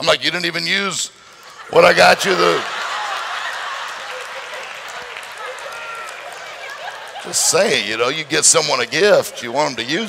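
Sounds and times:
voices and laughter: 1.3 - 7.9
audience applauding: 1.8 - 8.6.

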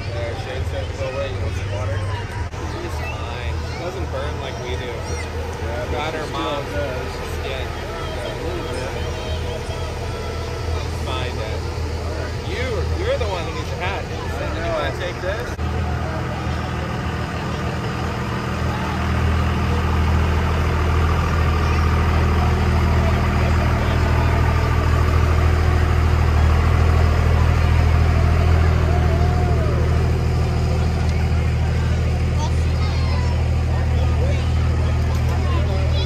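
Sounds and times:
crowd voices: 0.0 - 36.0
pickup truck engines rumbling: 0.0 - 36.0.

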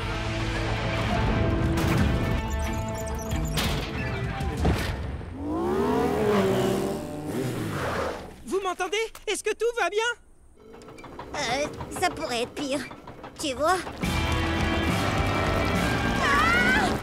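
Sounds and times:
cartoon action music: 14.0 - 17.0.

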